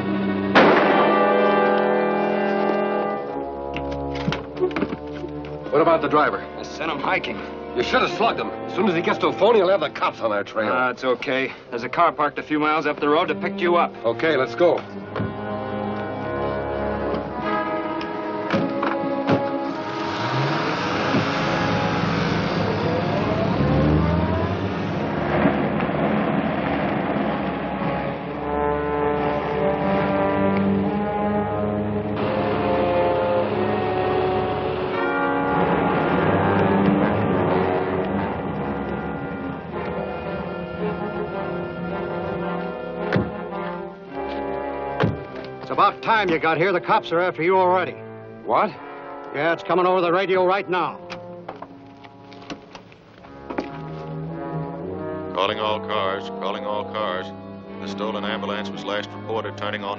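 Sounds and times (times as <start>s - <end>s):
orchestral music with brass: 0.0s - 59.9s
car engine speeding up: 19.6s - 28.4s, 32.2s - 41.9s
thuds: 43.1s - 43.4s, 45.0s - 45.4s.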